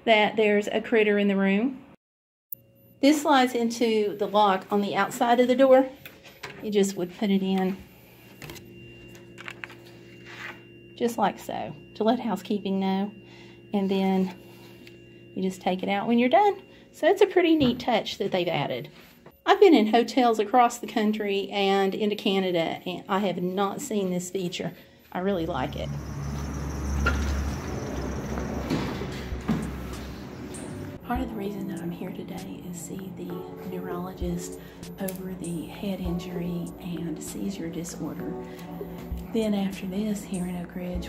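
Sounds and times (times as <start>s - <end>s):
low hum: 25.1s - 41.0s
glass door opening: 26.3s - 30.8s.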